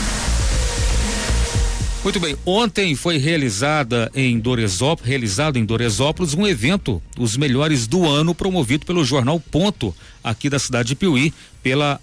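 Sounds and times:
whooshing wash: 0.0s - 2.4s
deep bass beat: 0.0s - 3.1s.

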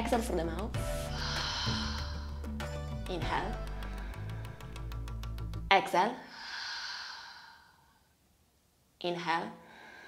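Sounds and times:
woman exhaling through mouth: 1.1s - 2.4s, 6.3s - 7.9s.

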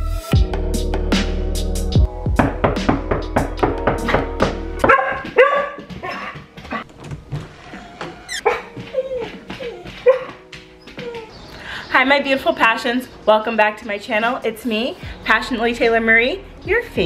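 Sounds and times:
dog yelping and whining: 7.6s - 11.5s.

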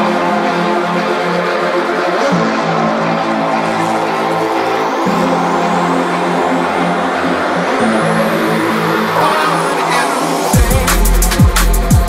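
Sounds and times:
drum and bass music: 0.0s - 12.0s
synth sweeps rising in pitch: 0.0s - 12.0s.

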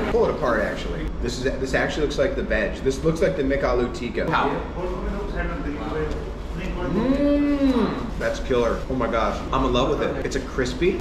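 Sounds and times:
man humming with mouth full: 6.9s - 8.2s.

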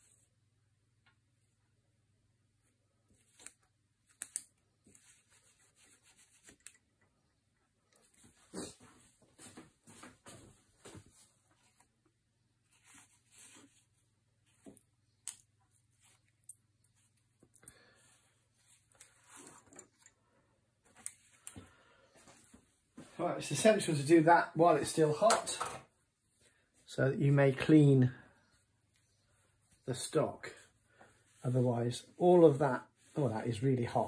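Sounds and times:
cloth rustling: 2.6s - 7.0s, 8.0s - 23.2s, 27.9s - 34.0s.

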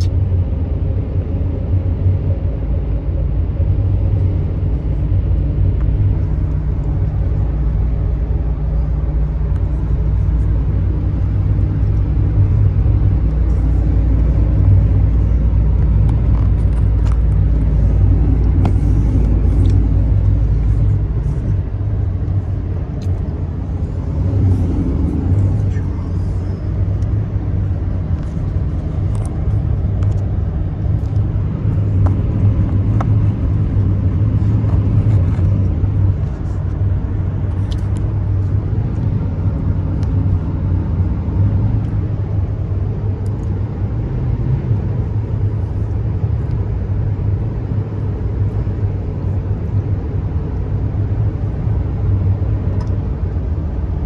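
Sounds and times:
road rumble: 0.0s - 54.0s
truck engine drone: 0.0s - 54.0s.

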